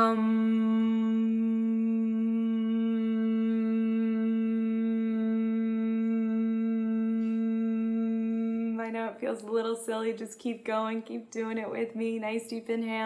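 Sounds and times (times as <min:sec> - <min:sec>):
woman humming steady note: 0:00.0 - 0:09.7
woman speaking: 0:08.8 - 0:13.0.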